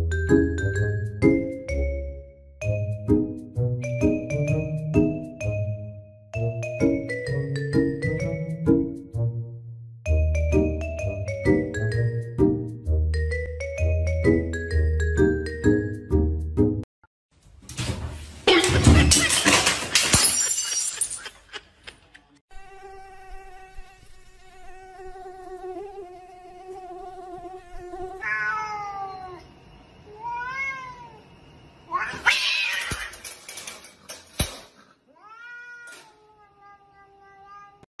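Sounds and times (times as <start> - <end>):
cat meowing: 28.0 - 29.4, 30.1 - 31.2, 31.9 - 33.1, 35.1 - 37.9
cat yowling: 28.0 - 29.4, 30.1 - 31.2, 31.9 - 33.2, 35.1 - 37.9.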